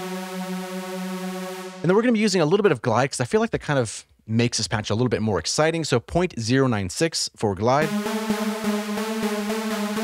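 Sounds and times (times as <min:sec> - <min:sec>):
synthesizer lead held note: 0:00.0 - 0:01.9, 0:07.8 - 0:10.0
man's voice: 0:01.8 - 0:07.9.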